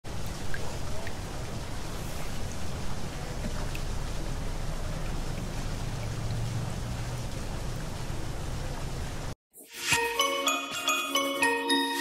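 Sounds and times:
stream trickling over stones: 0:00.1 - 0:09.0.

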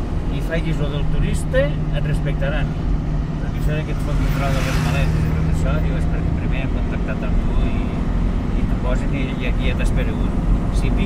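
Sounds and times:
low engine hum: 0:00.0 - 0:11.0
vehicle engine and road rumble: 0:00.0 - 0:11.0.

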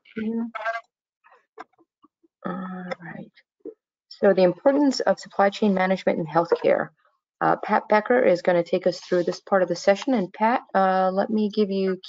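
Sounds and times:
person speaking: 0:04.2 - 0:12.0.

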